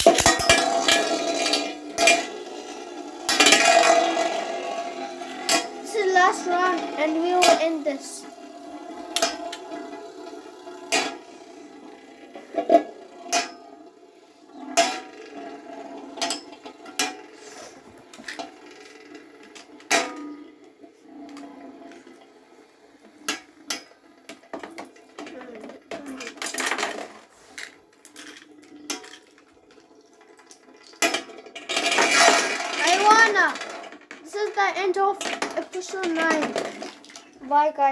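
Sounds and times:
metallic clatter: 0.0s - 13.7s, 23.2s - 37.4s
spinning tops clinking: 0.0s - 13.7s, 30.6s - 37.4s
spinning tops grinding on metal: 0.0s - 37.9s.

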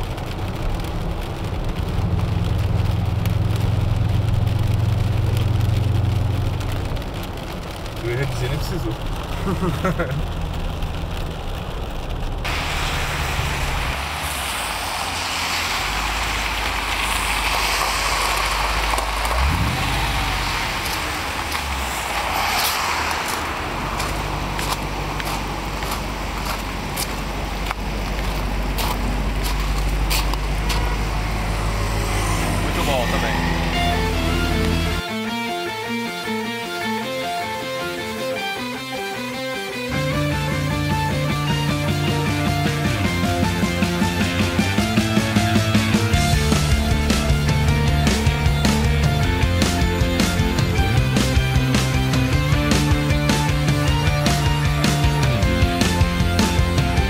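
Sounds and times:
car engine drone: 0.0s - 57.0s
road and rain noise: 0.0s - 57.0s
rock music: 12.5s - 26.6s, 30.0s - 57.0s.

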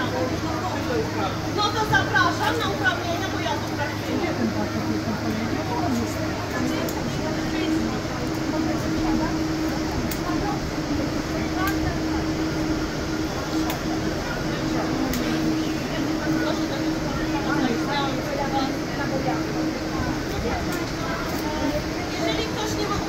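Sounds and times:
people talking indistinctly: 0.0s - 23.0s
steady low hum: 0.0s - 23.0s.

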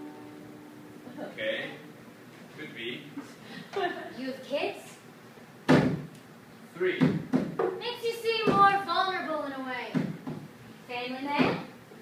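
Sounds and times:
sharp knock: 5.7s - 6.1s, 7.0s - 7.8s.

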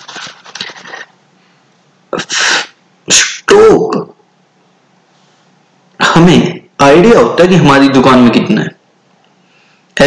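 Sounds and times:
man sneezing: 2.1s - 3.4s.

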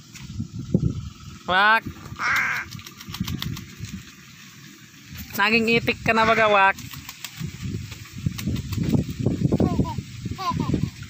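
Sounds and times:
crow cawing: 2.1s - 2.8s
bird splashing in water: 2.1s - 5.1s, 6.7s - 8.9s.

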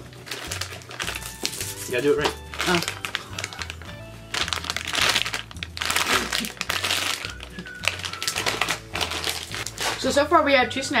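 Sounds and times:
plastic snack bag crinkling: 0.0s - 10.2s.

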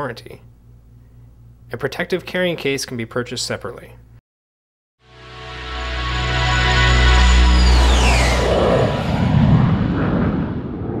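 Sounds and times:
music chord: 5.0s - 8.8s
jet fly-by whoosh: 5.3s - 11.0s
low rumble: 5.4s - 11.0s.

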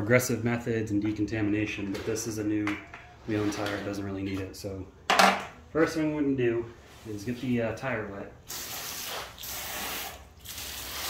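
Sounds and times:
hose spraying water on tire: 8.5s - 11.0s.

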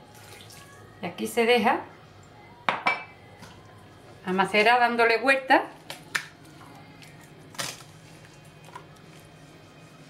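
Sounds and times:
meat squelching in marinade: 5.8s - 10.0s.

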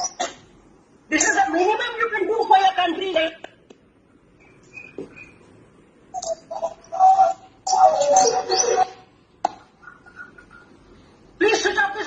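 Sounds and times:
bird calls: 4.4s - 5.5s, 6.2s - 9.0s, 9.8s - 10.8s.

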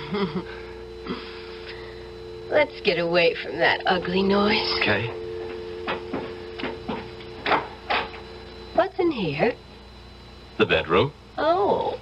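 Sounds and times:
footsteps on hard floor: 5.4s - 8.2s.

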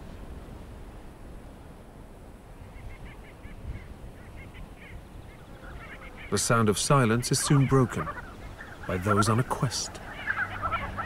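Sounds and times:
birds calling in flight: 2.6s - 11.0s.

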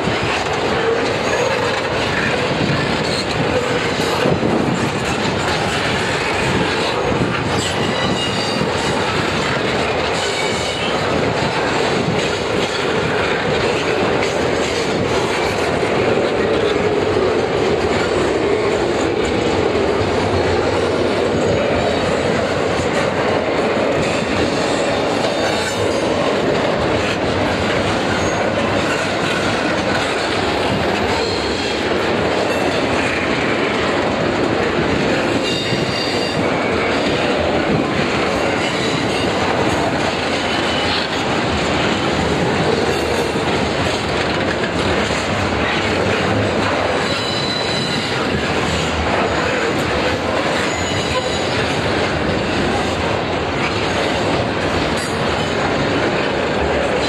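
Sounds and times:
train wheels rolling on rail: 0.0s - 57.0s.

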